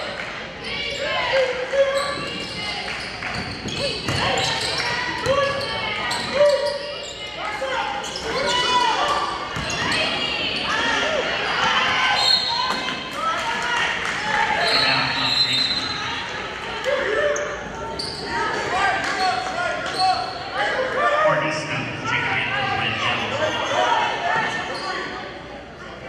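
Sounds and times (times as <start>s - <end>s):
voices calling out in gym: 0.0s - 26.0s.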